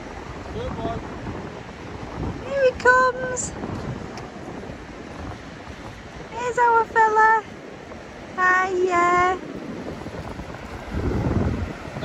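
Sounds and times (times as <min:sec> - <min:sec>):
steady surf: 0:00.0 - 0:12.0
wind buffeting microphone: 0:00.0 - 0:12.0.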